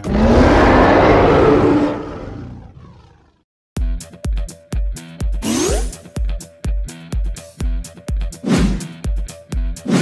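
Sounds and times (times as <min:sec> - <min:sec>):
dinosaur roar: 0:00.0 - 0:03.4.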